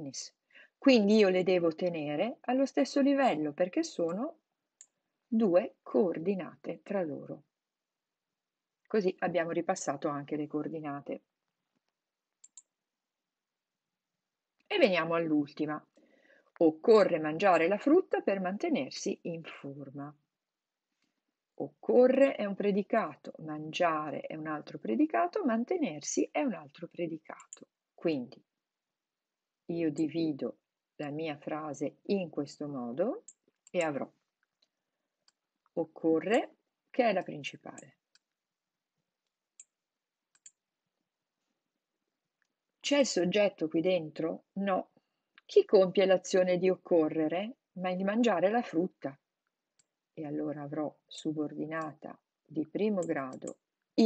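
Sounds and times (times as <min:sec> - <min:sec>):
faint quick clicks: 0:12.4 - 0:12.7, 0:40.3 - 0:40.6.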